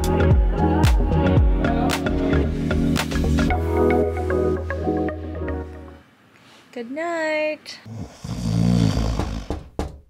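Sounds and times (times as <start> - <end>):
person snoring: 7.8 - 9.8.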